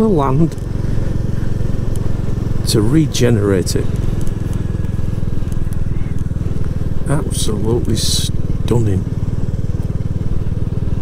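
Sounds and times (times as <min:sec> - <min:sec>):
motorcycle engine running steadily: 0:00.0 - 0:11.0.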